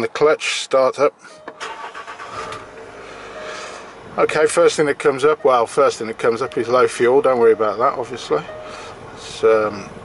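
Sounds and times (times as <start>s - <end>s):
diesel engine starting and idling: 1.3s - 9.9s.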